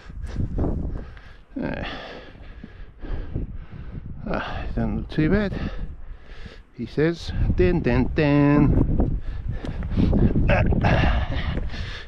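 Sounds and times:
low rumbling microphone noise: 0:00.0 - 0:12.0
man laughing breathily: 0:09.9 - 0:12.0.

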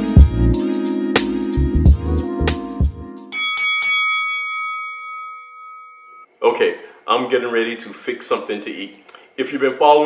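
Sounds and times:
bell-like chime ringing: 0:03.3 - 0:06.3.

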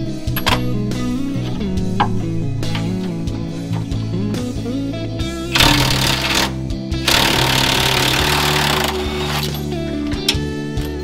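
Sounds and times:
guitar music: 0:00.0 - 0:11.0
impact wrench bursts: 0:05.5 - 0:09.6.

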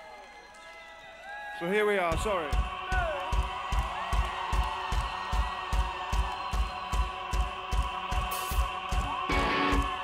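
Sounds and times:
crowd cheering: 0:00.0 - 0:10.0
kick drum pulse: 0:02.1 - 0:10.0.

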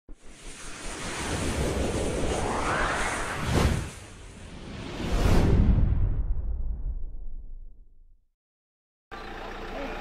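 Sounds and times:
rushing whoosh: 0:00.2 - 0:07.3.

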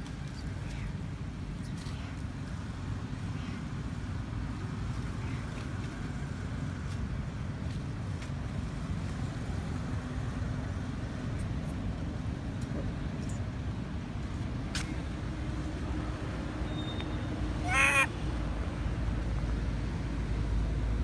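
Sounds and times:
vehicle engine rumbling: 0:00.0 - 0:21.0.

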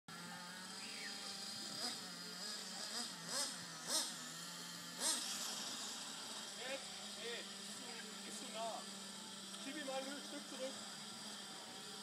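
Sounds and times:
model car motor revving: 0:00.1 - 0:12.0.

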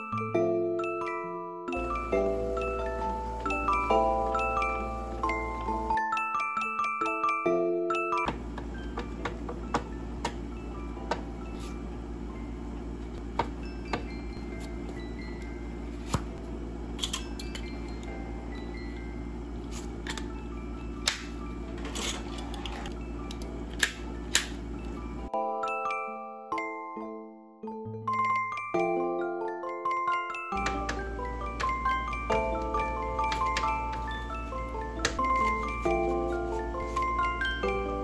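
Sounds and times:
music-box music: 0:00.0 - 0:11.6, 0:13.6 - 0:16.0, 0:17.2 - 0:26.9, 0:28.1 - 0:38.0
steady low hum: 0:01.8 - 0:06.0, 0:08.3 - 0:25.3.

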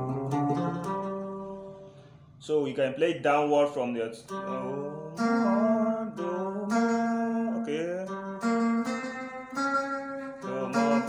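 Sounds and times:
electric guitar notes: 0:00.0 - 0:02.2, 0:04.3 - 0:11.0.

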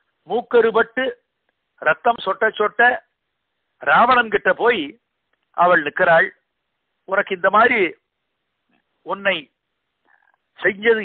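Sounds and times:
man speaking: 0:00.3 - 0:01.2, 0:01.8 - 0:03.1, 0:03.8 - 0:06.4, 0:07.1 - 0:08.0, 0:09.0 - 0:09.5, 0:10.6 - 0:11.0.

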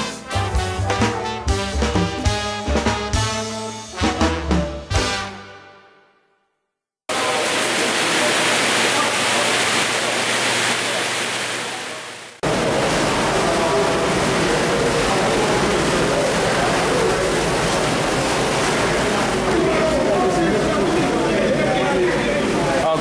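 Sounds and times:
machinery hum: 0:07.1 - 0:23.0
water rushing over weirs: 0:07.1 - 0:23.0.

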